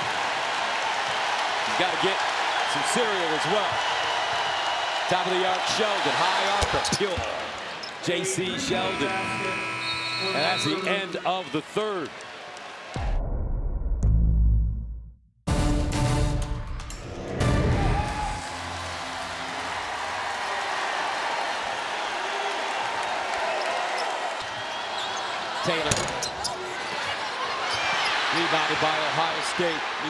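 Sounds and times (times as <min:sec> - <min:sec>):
arena crowd noise: 0:00.0 - 0:13.2, 0:17.7 - 0:30.0.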